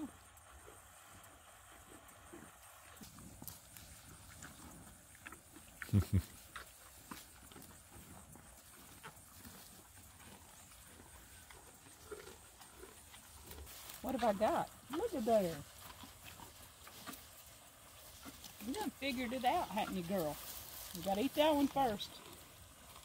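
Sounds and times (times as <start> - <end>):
cattle chewing and crunching: 0.0 - 23.0.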